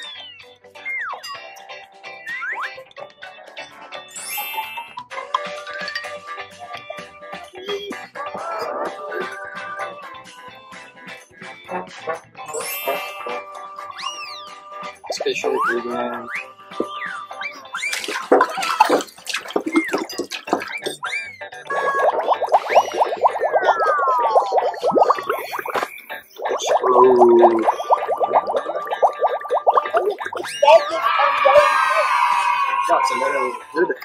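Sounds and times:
falling whistle: 0.0 - 1.3, 12.6 - 14.6, 15.2 - 18.1
sparkly twinkle: 4.1 - 5.0, 12.5 - 14.6
cartoon gargling rattle: 16.8 - 34.0.

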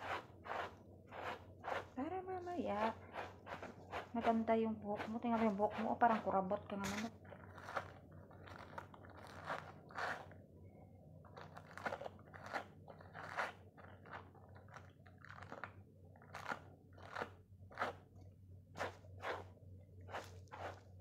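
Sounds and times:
brush rasping through dog coat: 0.0 - 2.0, 2.6 - 6.4, 7.5 - 10.3, 11.6 - 13.6, 18.8 - 19.5, 20.1 - 21.0
faint low hum: 0.0 - 21.0.

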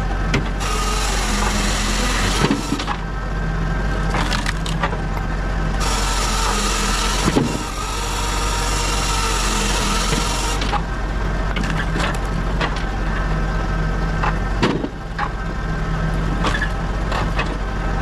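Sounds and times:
saw cutting through logs: 0.0 - 3.0, 5.8 - 10.9
firewood processor droning: 0.0 - 18.0.

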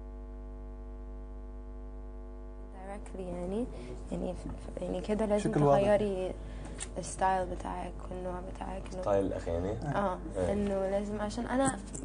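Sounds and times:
electrical mains hum: 0.0 - 12.0
person speaking: 2.8 - 6.3, 6.9 - 12.0.

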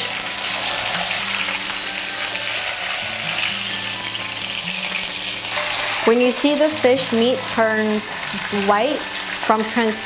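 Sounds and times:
fish sizzling in hot oil: 0.0 - 10.0.

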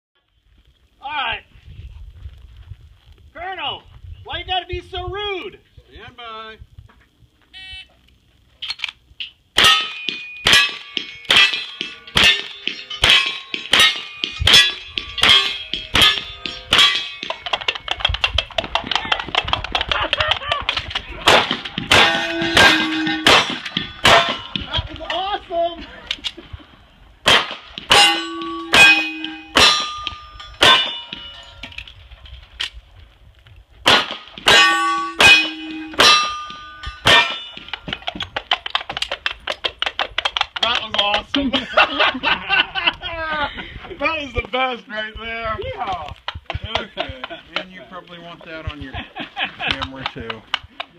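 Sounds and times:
gunshots: 9.6 - 17.3, 20.8 - 24.7, 27.2 - 30.0, 33.8 - 36.4
steel target ringing: 9.6 - 17.7, 21.3 - 24.7, 27.3 - 31.8, 33.9 - 37.9
coconut halves clapping hoofbeats: 17.3 - 21.1, 37.6 - 41.4.

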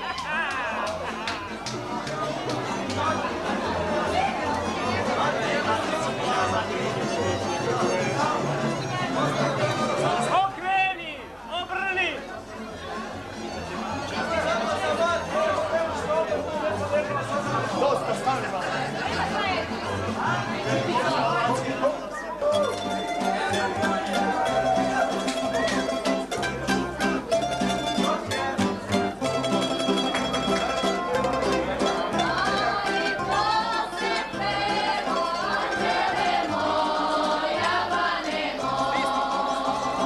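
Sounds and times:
group singing folk song: 0.0 - 10.4, 14.1 - 40.0
crowd chatter: 0.0 - 40.0.

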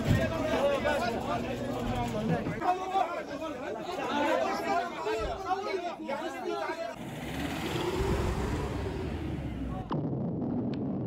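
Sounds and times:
men shouting and talking: 0.0 - 9.9.

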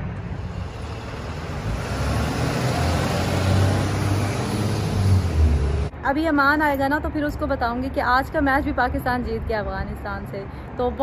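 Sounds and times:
car passing by: 0.2 - 5.9.

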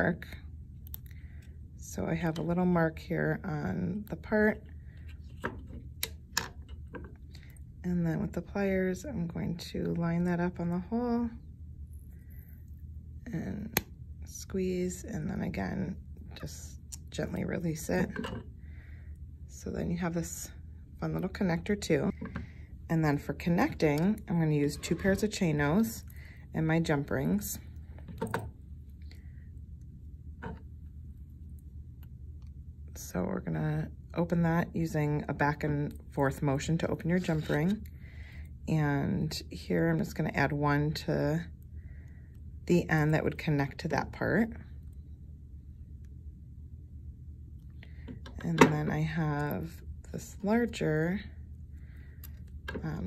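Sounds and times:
low room hum: 0.0 - 53.0.

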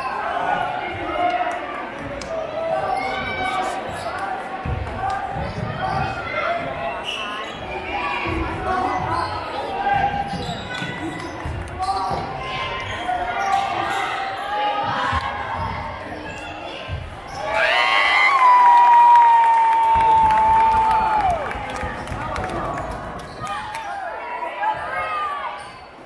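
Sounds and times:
voices in a large gym: 0.0 - 26.0
sneakers squeaking on court: 8.8 - 13.7.

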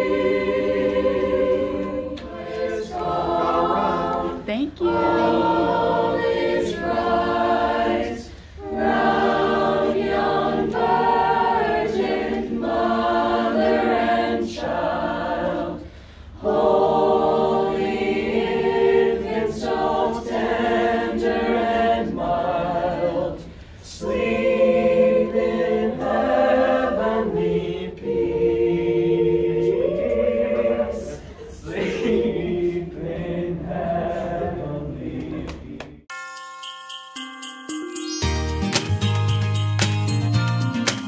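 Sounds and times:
group singing a carol: 0.0 - 36.1.

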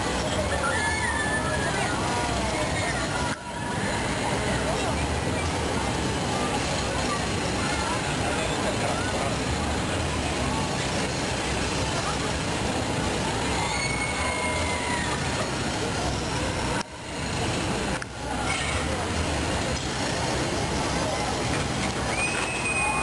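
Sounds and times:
faint voices talking: 0.0 - 23.0
furnace roaring: 0.0 - 23.0.

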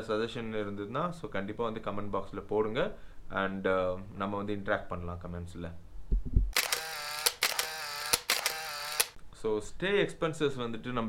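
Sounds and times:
sharp clicks: 6.6 - 9.2.

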